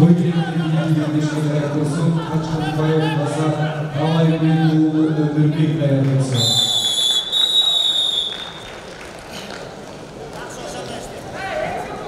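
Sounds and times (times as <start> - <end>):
referee's whistle blast: 6.4 - 8.6
crowd murmur: 8.8 - 12.0.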